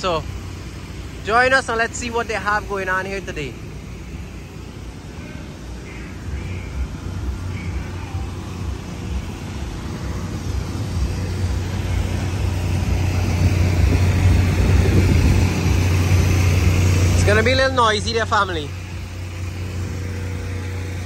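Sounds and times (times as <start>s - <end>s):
generator humming: 0.0s - 21.0s.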